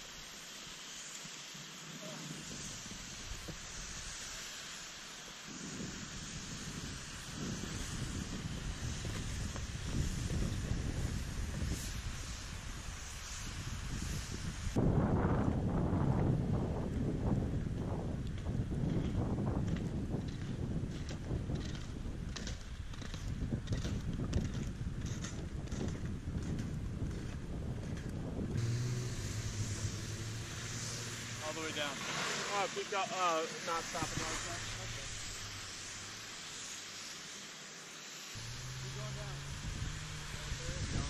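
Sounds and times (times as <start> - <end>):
wind buffeting microphone: 5.5 - 31.9, 38.4 - 41.0.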